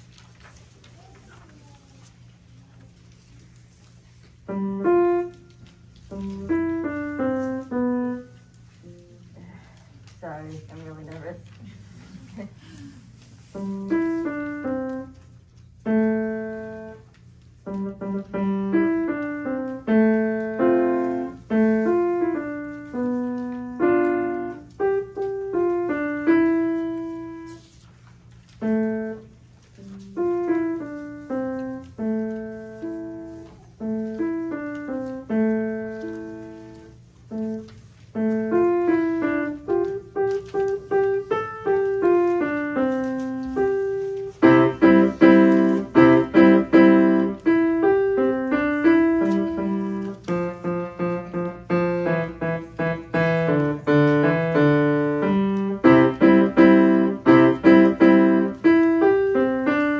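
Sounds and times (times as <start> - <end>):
grand piano playing: 4.4 - 9.3, 13.5 - 27.8, 28.4 - 59.9.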